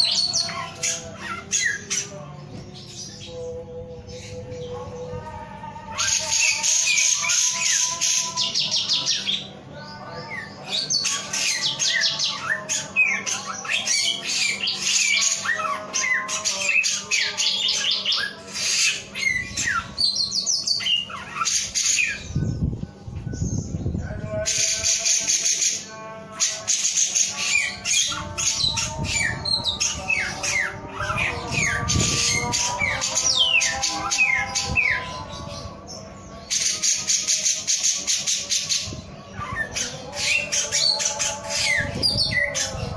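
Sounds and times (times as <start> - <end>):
songbird singing trills and whistles: 10.2 - 42.9.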